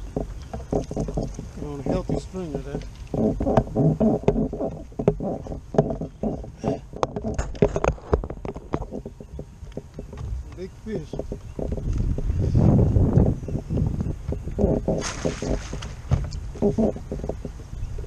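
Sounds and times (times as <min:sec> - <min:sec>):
sharp knocks and clicks: 0:00.0 - 0:12.3, 0:13.8 - 0:18.0.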